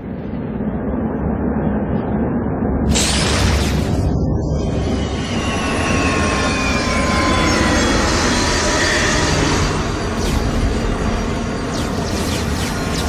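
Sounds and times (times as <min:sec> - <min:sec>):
high whine falling in pitch: 0:03.3 - 0:13.0.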